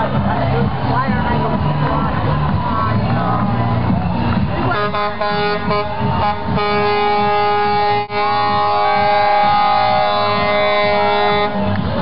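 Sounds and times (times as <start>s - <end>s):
background music with a beat: 0.0s - 12.0s
truck air horn blast: 4.6s - 11.8s.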